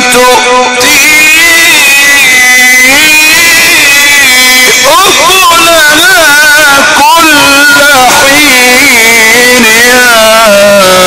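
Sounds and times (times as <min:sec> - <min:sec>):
man chanting long melismatic note: 0:00.0 - 0:11.0.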